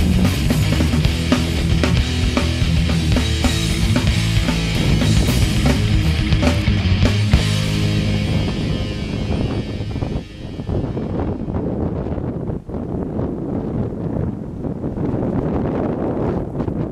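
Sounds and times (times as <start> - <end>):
rock music: 0.0 - 12.1
gusty wind buffeting microphone: 0.0 - 16.9.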